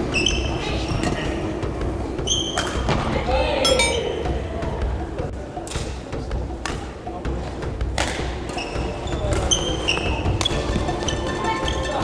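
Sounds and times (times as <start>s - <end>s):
shoes squeaking on wooden floor: 8.5s - 11.8s.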